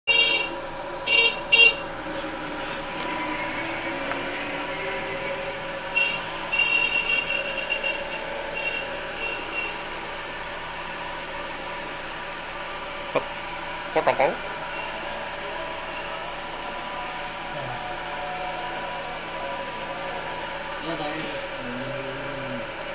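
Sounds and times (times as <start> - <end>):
horn tooting: 0.1 - 10.0
steady background hum: 0.1 - 22.9.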